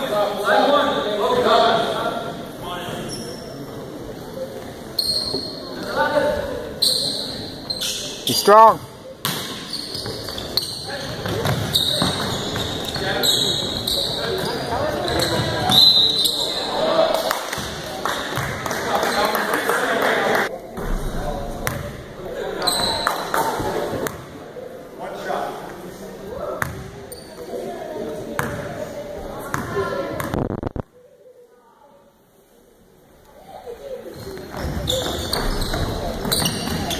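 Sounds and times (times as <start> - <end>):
sneaker squeaks: 2.9 - 3.8, 4.9 - 6.0, 6.8 - 16.8, 22.6 - 23.4, 26.6 - 27.7, 34.0 - 36.9
basketball bouncing: 11.1 - 12.7.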